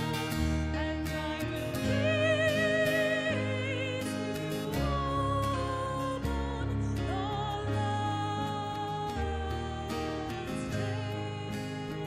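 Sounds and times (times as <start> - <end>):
person singing a hymn: 0.0 - 12.0.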